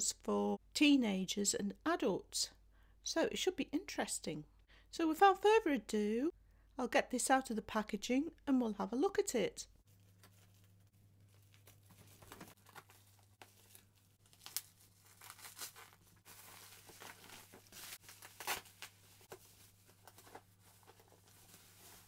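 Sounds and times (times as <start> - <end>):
plastic wrapping crinkling and tearing: 10.2 - 22.0.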